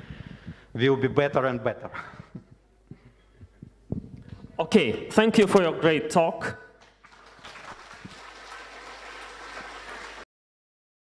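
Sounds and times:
audience applauding: 6.8s - 10.3s.

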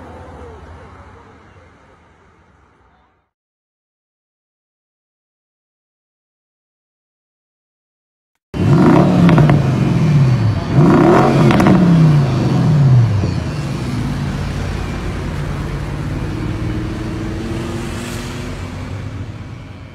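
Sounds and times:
car engine revving and idling: 8.6s - 19.9s.

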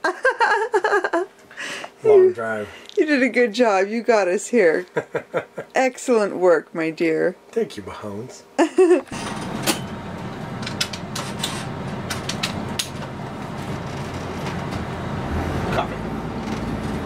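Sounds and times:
bus engine running: 9.1s - 17.0s
sharp clicks and knocks: 10.6s - 13.1s.

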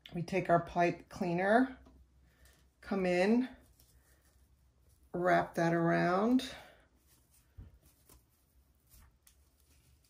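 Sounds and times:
faint rustles of burlap: 3.4s - 10.0s.

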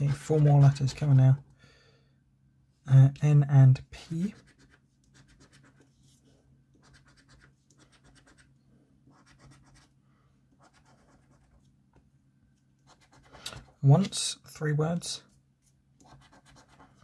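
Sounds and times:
coin scratching a scratchcard: 6.8s - 8.5s, 9.2s - 9.8s, 16.0s - 16.9s.

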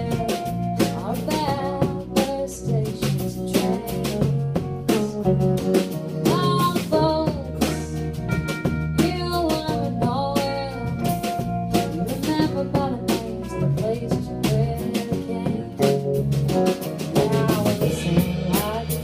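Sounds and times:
drum kit beat: 0.0s - 19.0s
electric bass: 0.0s - 19.0s
electric guitar lead: 0.0s - 19.0s.

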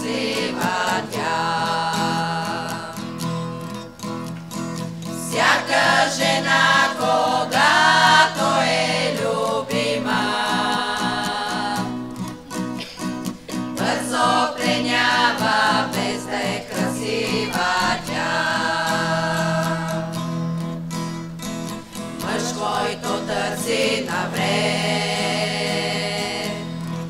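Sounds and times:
women's vocal group singing: 0.0s - 3.2s, 5.1s - 12.9s, 13.6s - 20.5s, 22.0s - 27.0s
strummed acoustic guitar: 0.0s - 27.0s.

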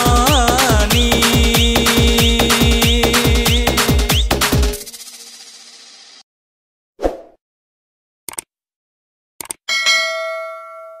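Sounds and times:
bright bell ding: 9.7s - 11.0s.

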